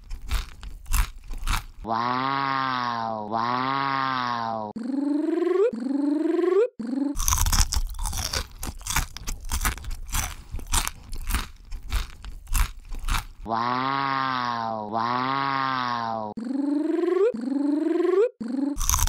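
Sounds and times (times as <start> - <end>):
crunching and chewing: 0.0 - 1.9, 7.2 - 13.5, 18.8 - 19.0.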